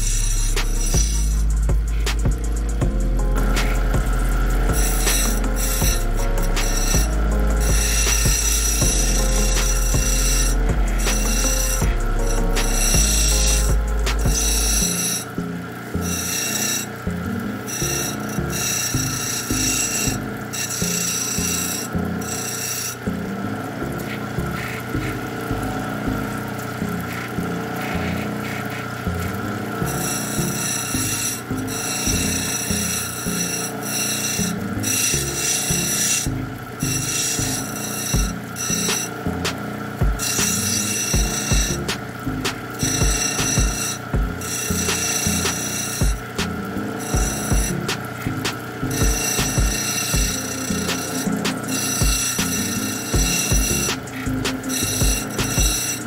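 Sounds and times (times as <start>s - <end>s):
deep machine hum: 0.0s - 22.4s, 23.0s - 33.8s, 34.4s - 55.8s
stone grinding on wet wheel: 0.0s - 56.0s.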